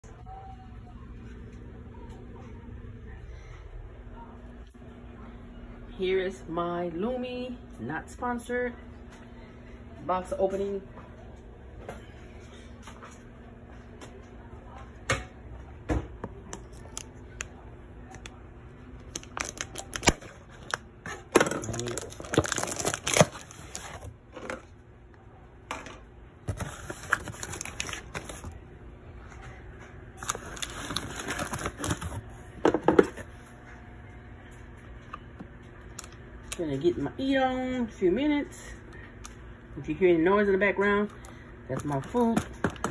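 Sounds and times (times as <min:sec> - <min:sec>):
cardboard tearing and crinkling: 0:21.7 - 0:24.0, 0:30.2 - 0:32.2.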